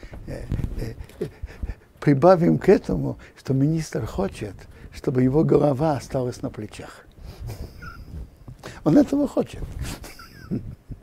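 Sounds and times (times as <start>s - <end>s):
man chuckling: 7.4s - 8.4s, 9.8s - 11.0s.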